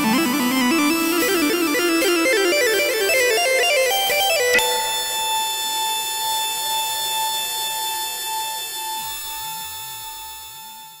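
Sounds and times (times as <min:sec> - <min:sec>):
long bright synth tone: 0:02.5 - 0:08.4
wavering synth pitch glides: 0:04.4 - 0:05.6.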